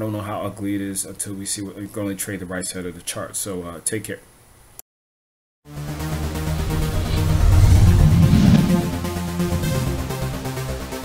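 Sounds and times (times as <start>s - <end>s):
electronic synth music with bass: 5.8s - 11.0s.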